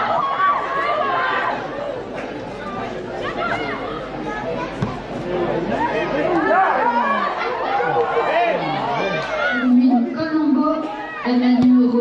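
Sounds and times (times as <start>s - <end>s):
spectators talking: 0.0s - 12.0s
players shouting: 5.7s - 10.1s.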